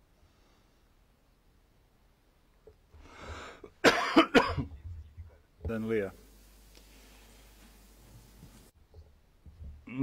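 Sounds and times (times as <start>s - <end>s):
person coughing: 3.8s - 4.8s
person speaking: 5.6s - 6.4s.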